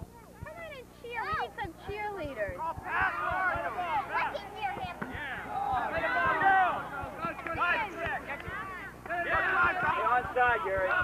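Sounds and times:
children shouting and chattering: 0:00.0 - 0:11.0.

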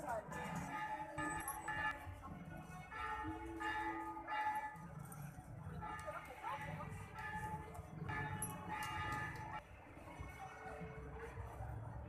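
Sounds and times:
low street murmur: 0:00.0 - 0:12.0
bell-like chimes: 0:00.5 - 0:02.0.

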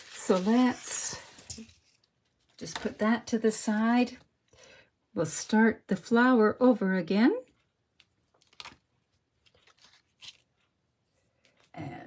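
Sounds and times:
faint paper rustling: 0:00.0 - 0:03.1, 0:08.2 - 0:11.8.

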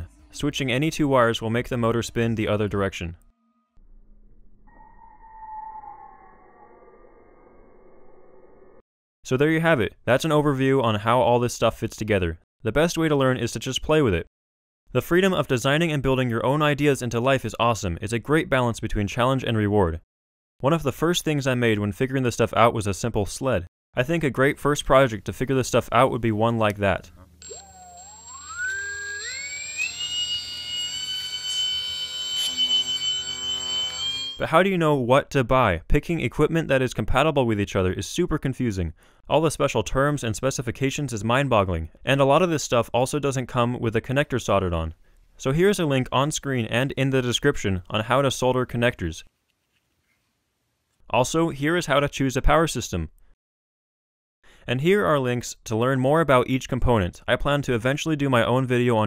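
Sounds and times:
small electric motor whining: 0:27.4 - 0:34.4.

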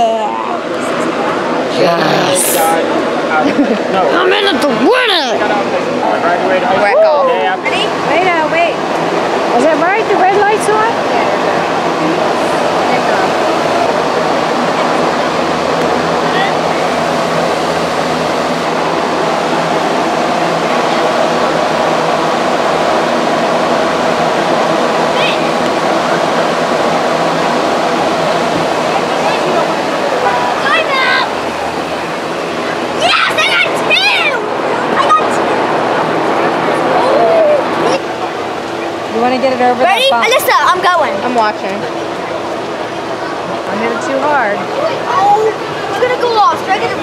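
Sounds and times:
indistinct voices: 0:00.0 - 0:47.0
steady rushing noise: 0:00.0 - 0:47.0
voices calling out: 0:00.0 - 0:47.0.

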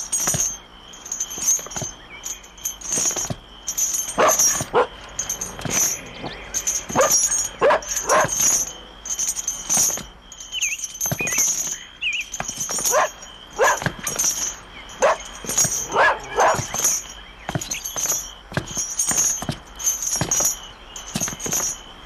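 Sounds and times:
high chirps: 0:03.6 - 0:12.4
dog barking: 0:04.2 - 0:05.0, 0:07.0 - 0:08.5, 0:12.9 - 0:13.9, 0:15.0 - 0:16.7.

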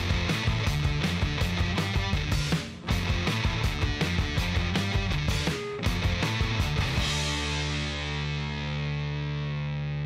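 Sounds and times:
distorted electric guitar chord: 0:00.0 - 0:10.0.

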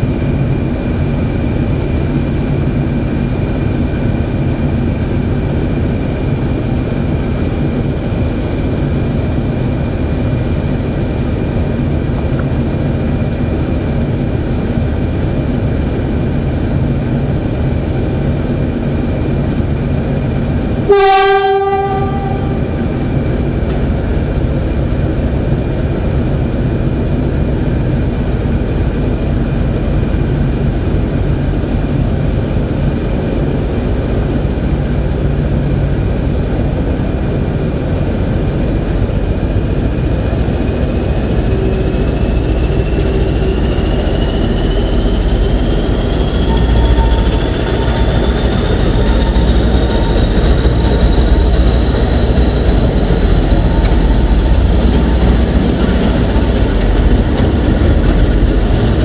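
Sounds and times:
diesel locomotive engine running: 0:00.0 - 0:59.0
train horn blast: 0:20.8 - 0:23.2, 0:41.4 - 0:58.2.

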